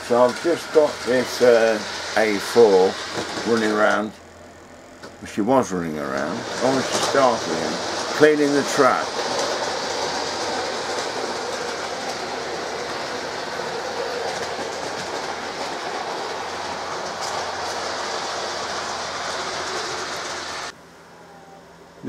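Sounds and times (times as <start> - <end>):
model train rattle and motor hum: 0.0 - 20.8.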